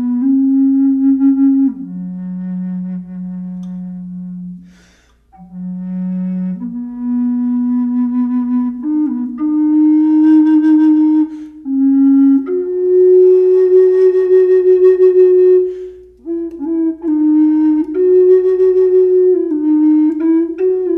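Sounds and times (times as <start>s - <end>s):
wooden bass flute melody: 0.0s - 20.9s
quick breath: 4.6s - 5.3s, 11.3s - 11.6s, 15.7s - 16.2s.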